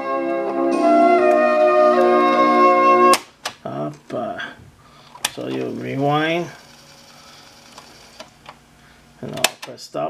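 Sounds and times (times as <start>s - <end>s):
cassette motor whir: 5.3s - 8.6s.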